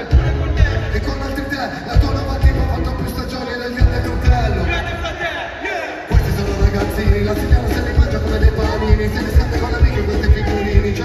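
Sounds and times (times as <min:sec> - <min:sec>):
hip hop music over sound system: 0:00.0 - 0:11.0.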